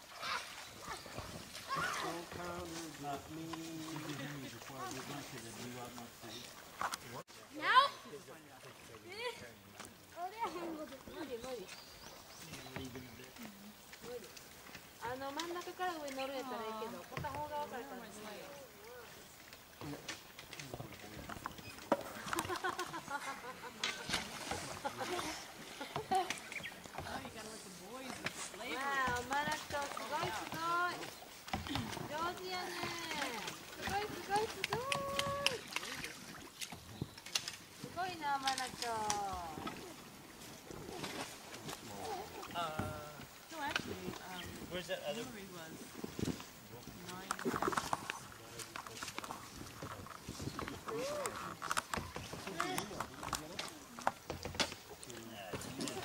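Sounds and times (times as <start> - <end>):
voices calling out: 0.0 - 5.4, 9.2 - 45.5
people calling out: 32.2 - 35.8.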